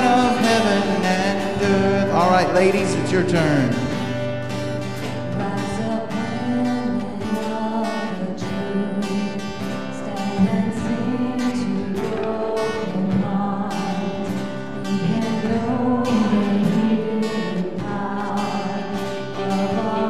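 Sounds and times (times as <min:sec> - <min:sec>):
people singing: 0:00.0 - 0:20.0
strummed acoustic guitar: 0:00.0 - 0:20.0.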